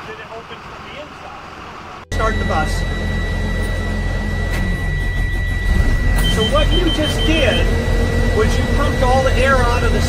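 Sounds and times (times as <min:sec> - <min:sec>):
high-pitched warning tone: 0:02.0 - 0:10.0.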